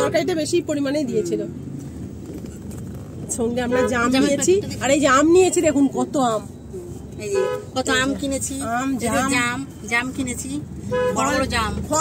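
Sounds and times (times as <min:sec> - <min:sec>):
voices talking inside a car: 0:00.0 - 0:12.0.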